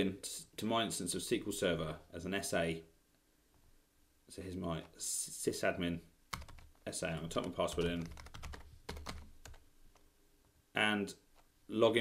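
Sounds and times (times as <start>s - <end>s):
keyboard keystrokes: 7.4s - 9.6s.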